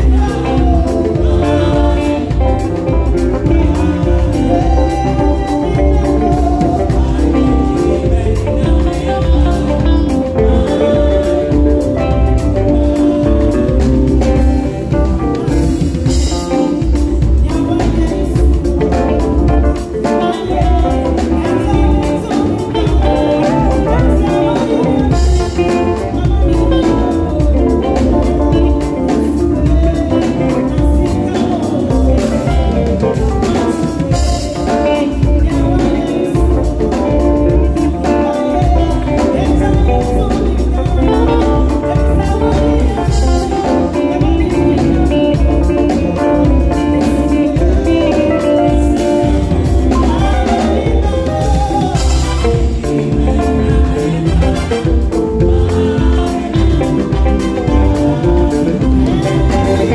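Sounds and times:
deep bass guitar: 0.0 - 59.9
electric guitar melody: 0.0 - 59.9
live band playing highlife groove: 0.0 - 59.9
steady drum beat: 0.0 - 59.9.

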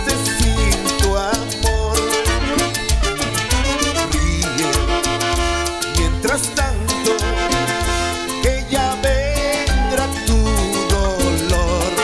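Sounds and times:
percussion rhythm: 0.0 - 12.0
pulsing bass line: 0.0 - 12.0
trumpets: 2.0 - 6.1, 7.0 - 8.8, 9.5 - 10.3.

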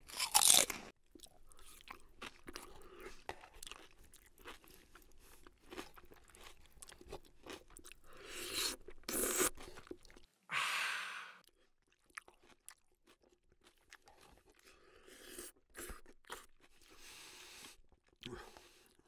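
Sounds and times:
crunchy food being chewed: 0.0 - 10.3, 11.4 - 19.0.

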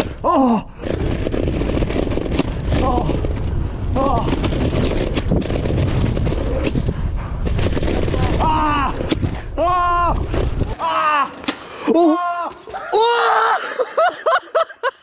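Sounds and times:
bike tyres rumbling over dirt: 0.0 - 11.7
wind buffeting microphone: 0.1 - 10.8
person shouting oh: 11.9 - 13.7.

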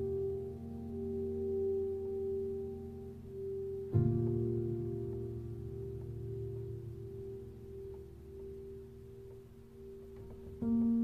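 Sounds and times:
quiet instrumental background music: 0.0 - 11.0.

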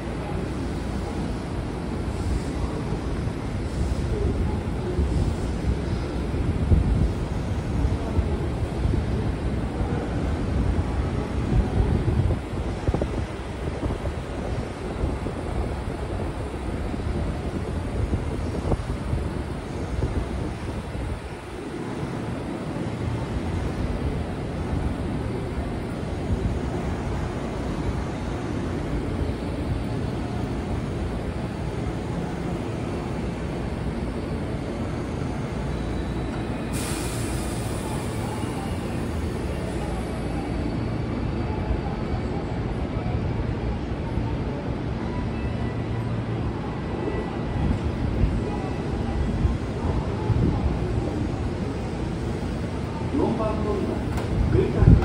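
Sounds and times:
train equipment low rumble: 0.0 - 55.0
compressed air hiss: 36.7 - 38.3.

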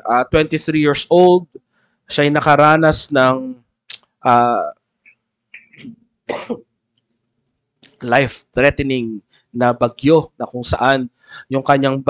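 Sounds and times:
man coughing: 6.3 - 6.6.

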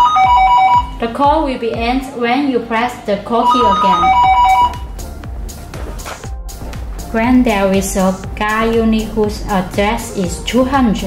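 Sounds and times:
intercom two-note ringing tone: 0.0 - 1.0, 3.4 - 5.0.

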